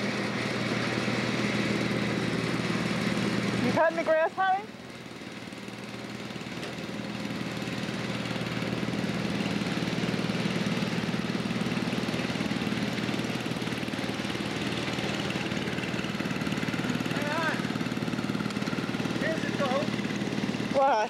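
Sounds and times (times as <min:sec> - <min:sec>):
riding lawn mower engine running: 0:00.0 - 0:21.0.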